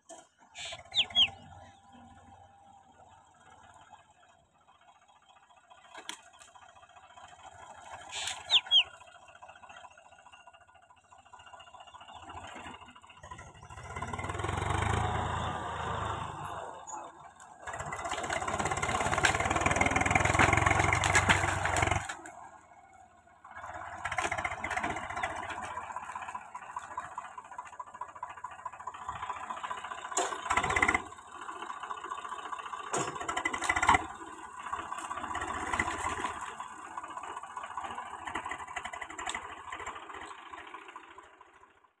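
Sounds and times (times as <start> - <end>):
tractor diesel engine under load: 0.0 - 42.0
plough clanking: 12.3 - 41.6.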